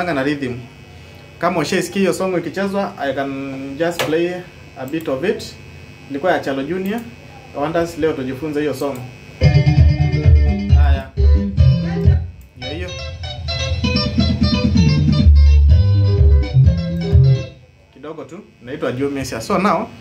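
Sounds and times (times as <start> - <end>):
bass line: 9.4 - 17.6
electric guitar lead notes: 9.4 - 17.6.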